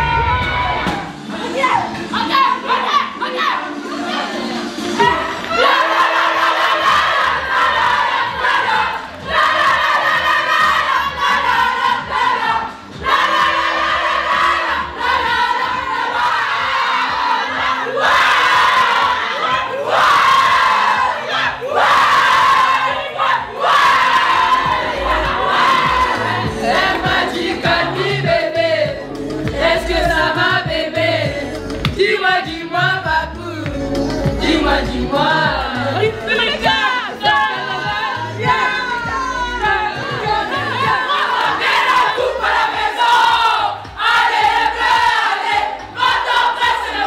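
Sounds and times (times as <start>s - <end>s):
music playing: 0.0s - 47.0s
women singing and chanting: 0.0s - 47.0s.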